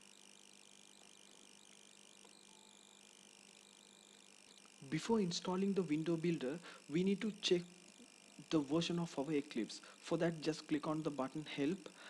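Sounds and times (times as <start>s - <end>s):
microphone hiss: 0.0s - 12.0s.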